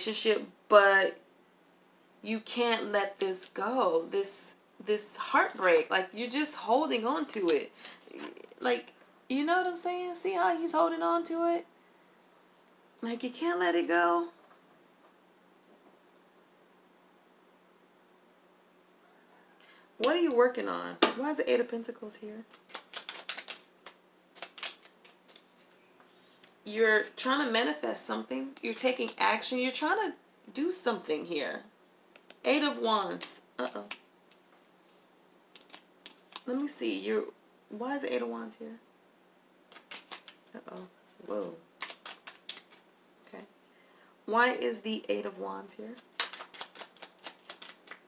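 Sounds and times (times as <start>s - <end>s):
cards being shuffled: 22.5s - 25.8s, 35.5s - 36.7s, 39.7s - 40.6s, 41.8s - 42.9s, 46.0s - 48.0s.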